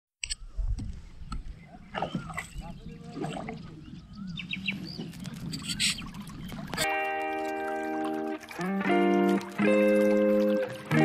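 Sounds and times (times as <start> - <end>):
birds chirping: 0.4 - 9.0.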